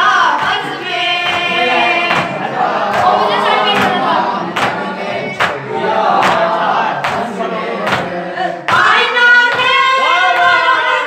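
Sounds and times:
boy singing a lament: 0:00.0 - 0:11.0
voices singing in chorus: 0:00.0 - 0:11.0
sharp slaps: 0:02.1 - 0:03.2, 0:04.6 - 0:04.8, 0:06.2 - 0:08.1.

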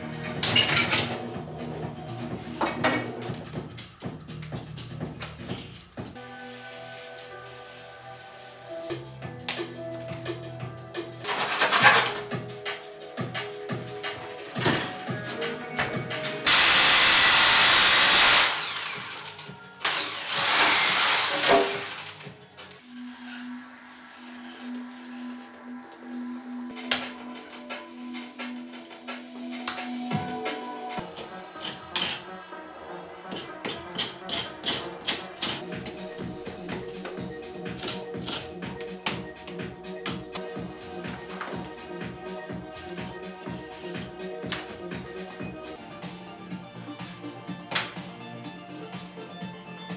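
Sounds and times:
background music: 0:00.0 - 0:49.9.

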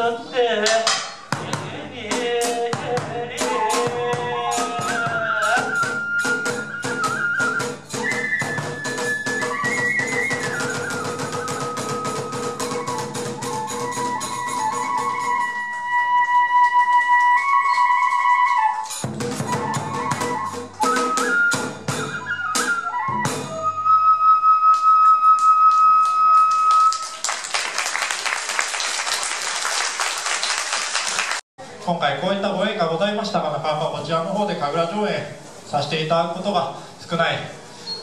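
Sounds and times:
percussion strikes: 0:00.6 - 0:23.8
bamboo flute holding notes: 0:03.5 - 0:27.1
audience applauding: 0:26.0 - 0:31.4.

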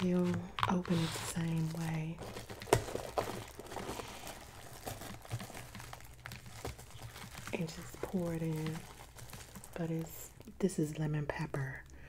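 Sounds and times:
plastic wrap crinkling: 0:00.0 - 0:11.0.

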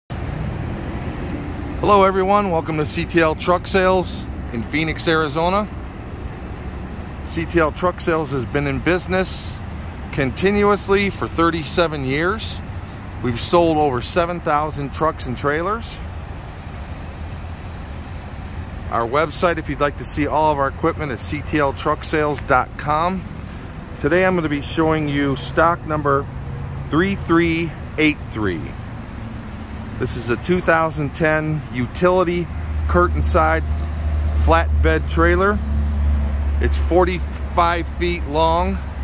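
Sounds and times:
vehicle engine rumbling: 0:00.1 - 0:39.0
man talking: 0:01.8 - 0:05.8, 0:07.2 - 0:16.2, 0:18.8 - 0:28.9, 0:30.0 - 0:35.7, 0:36.6 - 0:39.0.

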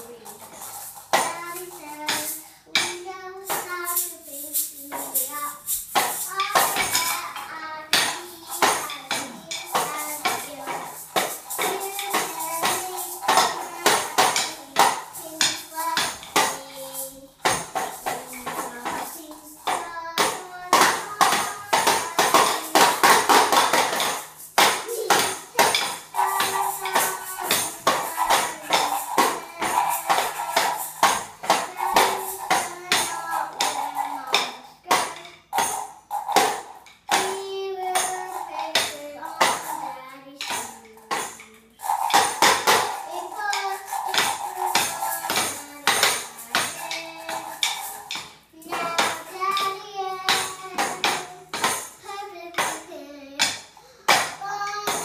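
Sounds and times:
maracas: 0:00.0 - 0:55.0
toy drum hits: 0:00.0 - 0:55.0.

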